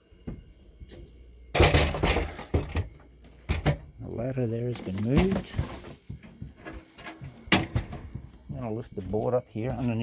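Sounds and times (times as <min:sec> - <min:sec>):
man speaking: 0:04.0 - 0:05.6, 0:08.5 - 0:10.0.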